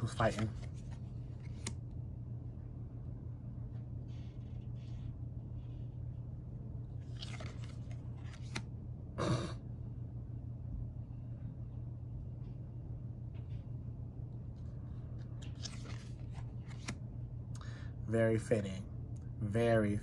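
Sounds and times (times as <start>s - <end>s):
steady low hum: 0.0s - 20.0s
cards sliding and rustling: 0.2s - 1.8s, 4.0s - 5.9s, 7.0s - 8.7s, 15.3s - 17.0s.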